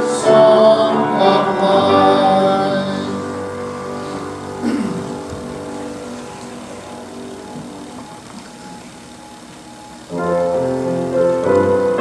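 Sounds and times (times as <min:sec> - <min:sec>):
congregation singing hymn chord: 0:00.0 - 0:12.0.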